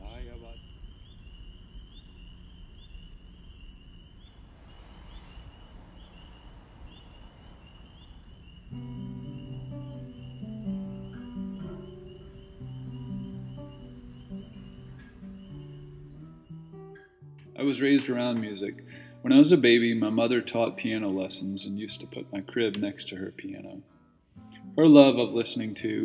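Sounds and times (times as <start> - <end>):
insects chirring: 0.0 - 23.8, 24.4 - 26.0
acoustic guitar playing: 8.6 - 26.0.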